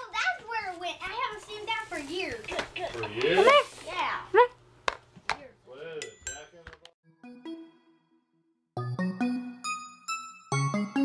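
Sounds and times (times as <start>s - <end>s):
child's voice: 0.0s - 3.1s, 3.8s - 4.4s.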